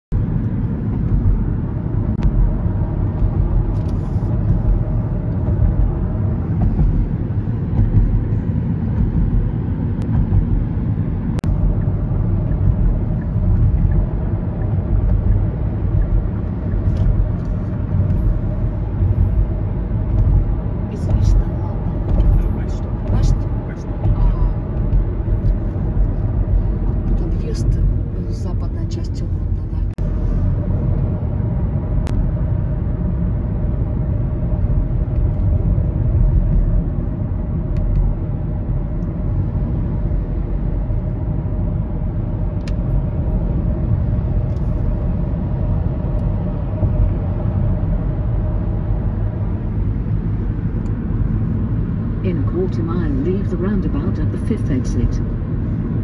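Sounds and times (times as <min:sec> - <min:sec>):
car cabin road rumble: 0:00.0 - 0:56.0.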